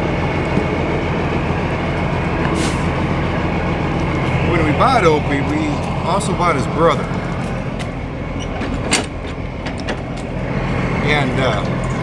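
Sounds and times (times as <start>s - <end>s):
truck diesel engine idling: 0.0s - 12.0s.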